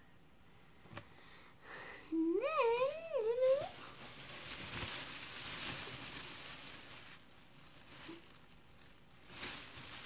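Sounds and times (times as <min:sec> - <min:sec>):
plastic shopping bag rustling: 0:02.4 - 0:10.0.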